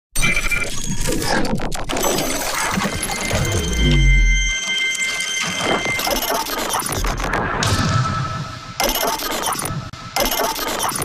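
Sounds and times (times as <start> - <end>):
noisy electronic sound effects: 0.2 - 11.0.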